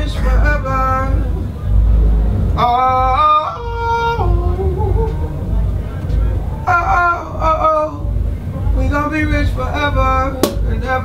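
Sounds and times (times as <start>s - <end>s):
heavy deep bass: 0.0s - 11.0s.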